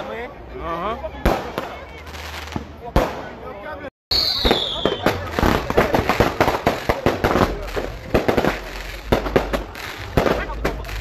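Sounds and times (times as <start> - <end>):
fireworks bangs and crackles: 1.2 - 3.5, 4.1 - 11.0.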